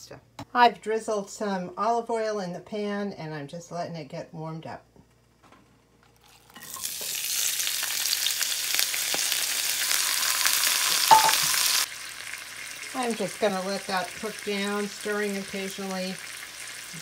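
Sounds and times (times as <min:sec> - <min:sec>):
food sizzling in oil: 0:06.2 - 0:17.0.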